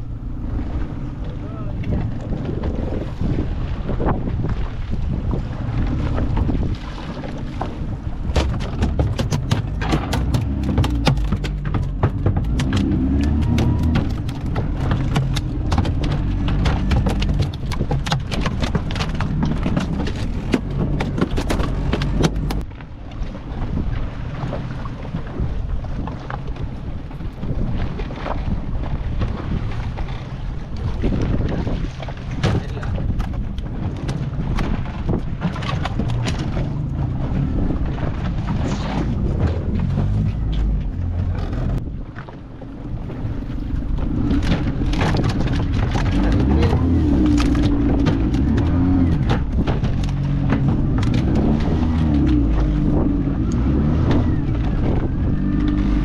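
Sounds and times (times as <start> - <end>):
boat engine rumble: 0.0 - 56.0
wind buffeting microphone: 0.0 - 56.0
fish thrashing on deck: 6.0 - 22.6, 44.0 - 56.0.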